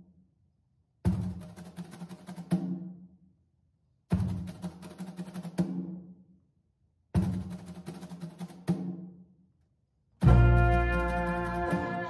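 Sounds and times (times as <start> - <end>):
snare drum phrases: 1.0 - 3.0, 4.1 - 6.2, 7.2 - 9.2, 10.2 - 12.0.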